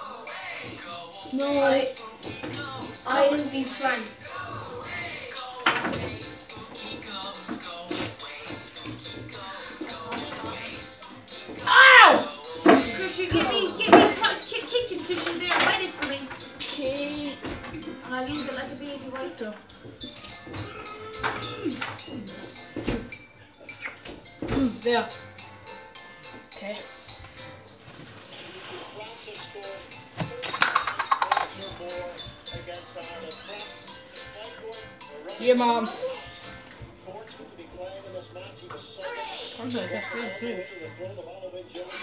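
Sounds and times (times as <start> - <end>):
background music: 0.0 - 42.0
dishes and cutlery clattering: 5.5 - 25.0, 27.4 - 37.4
voices: 9.3 - 19.7, 37.1 - 42.0.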